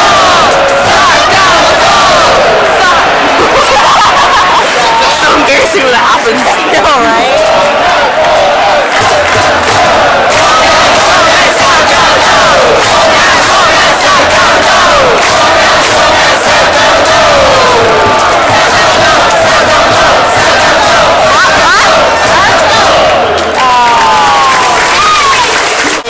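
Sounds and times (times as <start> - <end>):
stadium crowd shouting and chanting: 0.0 - 26.0.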